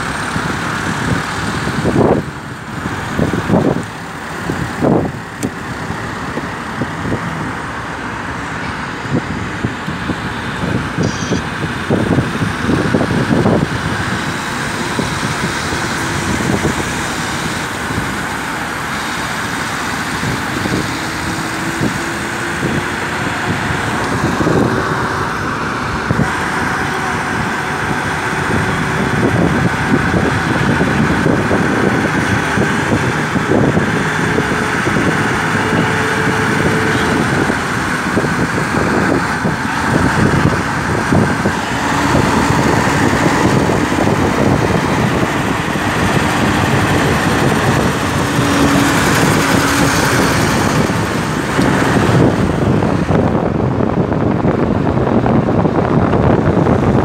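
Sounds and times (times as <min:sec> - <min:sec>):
car engines: 0:00.0 - 0:57.0
tyres on road: 0:00.0 - 0:57.0.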